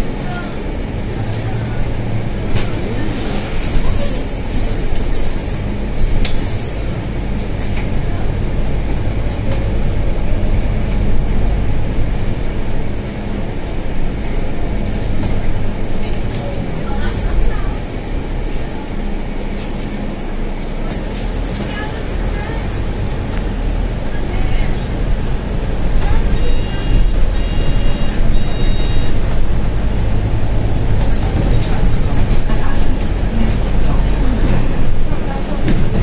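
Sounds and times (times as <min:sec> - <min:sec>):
bus diesel engine drone: 0:00.0 - 0:36.0
sharp clicks inside bus: 0:01.2 - 0:01.5, 0:02.4 - 0:02.9, 0:04.5 - 0:10.0, 0:14.8 - 0:15.5, 0:16.2 - 0:17.7, 0:29.8 - 0:36.0.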